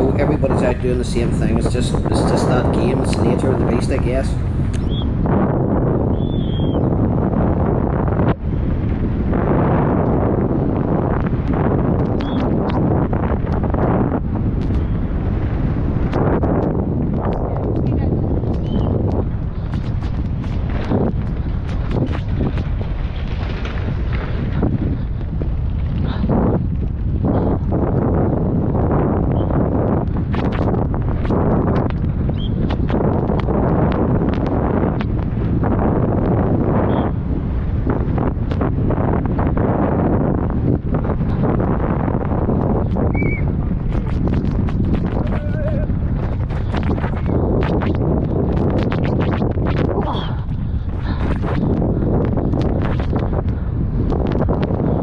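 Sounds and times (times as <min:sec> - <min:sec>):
bike tyres rumbling on ground: 0:00.0 - 0:55.0
wind rushing over microphone: 0:00.0 - 0:55.0
bike rattling over rocks: 0:18.5 - 0:27.2.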